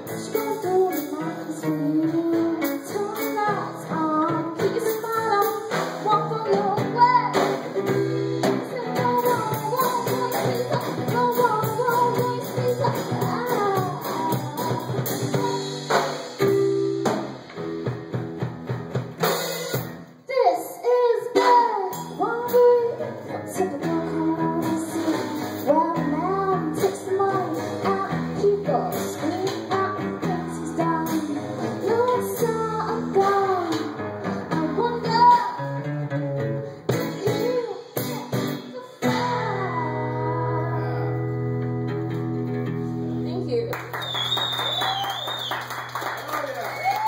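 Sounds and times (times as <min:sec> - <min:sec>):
woman singing: 0:00.0 - 0:16.0, 0:20.3 - 0:35.8, 0:36.9 - 0:41.3
drum kit: 0:00.0 - 0:20.3, 0:21.2 - 0:40.6.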